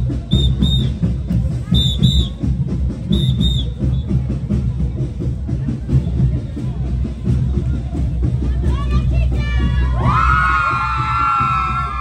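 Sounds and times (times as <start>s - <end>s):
festive band music: 0.0s - 10.0s
shrill whistle blasts: 0.3s - 1.0s, 1.7s - 2.4s, 3.1s - 4.2s.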